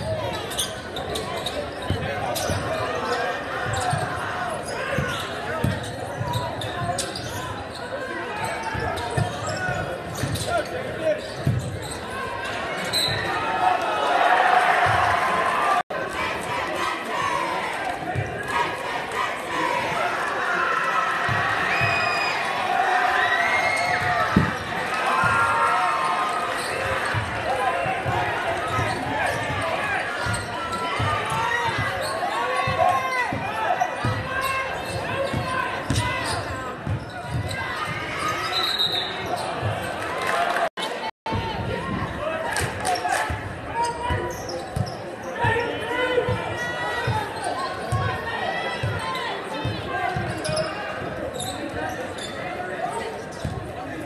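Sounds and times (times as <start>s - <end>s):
crowd chatter: 0.0s - 54.0s.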